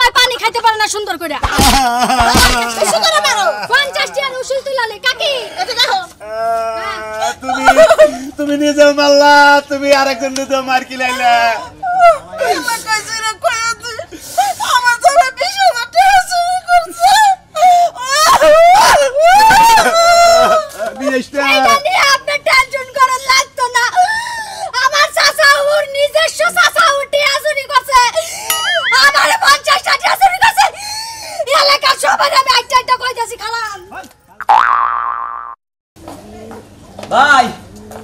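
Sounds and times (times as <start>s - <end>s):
woman wailing: 17.0s - 20.7s
loud wobbling comedic tone: 34.4s - 35.6s.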